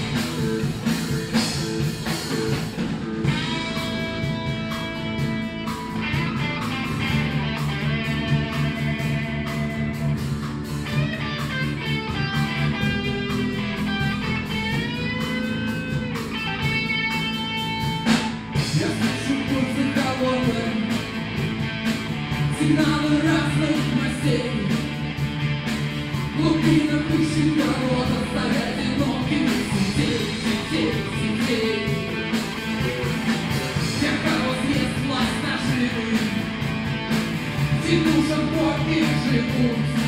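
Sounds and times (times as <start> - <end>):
bass guitar: 0.0 - 40.0
drums: 0.0 - 40.0
lead electric guitar bending notes: 0.0 - 40.0.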